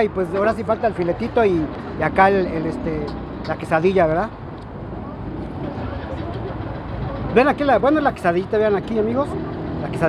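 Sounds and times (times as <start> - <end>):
street traffic rumble: 0.0 - 10.0
vehicle engine idling: 0.0 - 10.0.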